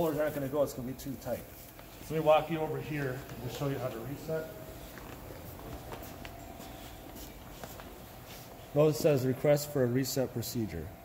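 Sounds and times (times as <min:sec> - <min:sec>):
footsteps on wooden floor: 0:04.6 - 0:08.7.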